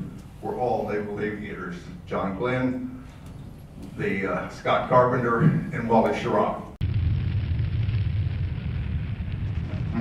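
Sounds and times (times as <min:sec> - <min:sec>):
deep rumble: 0:06.8 - 0:10.0.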